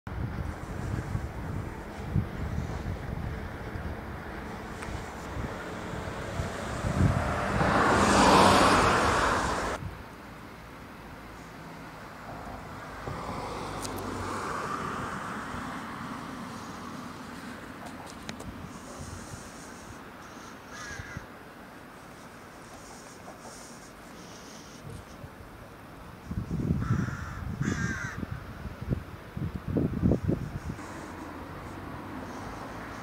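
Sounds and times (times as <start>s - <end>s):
wind rumbling on microphone: 0.1s - 10.1s, 12.3s - 20.1s, 24.7s - 33.0s
vehicle passing: 0.4s - 9.8s, 11.1s - 20.2s, 30.1s - 33.0s
faint steady hiss: 9.2s - 26.8s.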